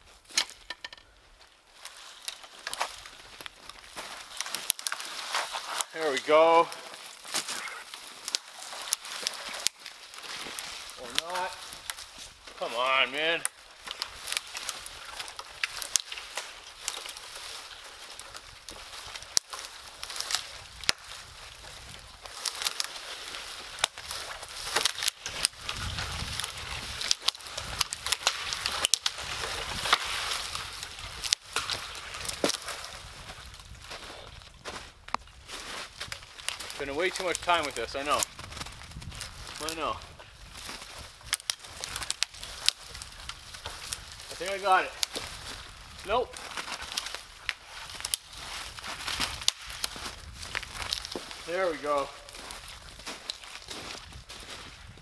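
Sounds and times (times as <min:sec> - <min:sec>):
dry wood cracking: 0:00.0 - 0:55.0
boots crunching in snow: 0:33.9 - 0:54.8.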